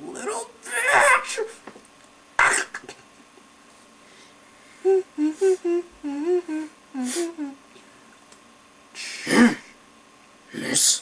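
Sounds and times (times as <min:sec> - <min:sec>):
person humming a tune: 0:04.8 - 0:07.7
loud breathy vocal burst: 0:08.9 - 0:09.8.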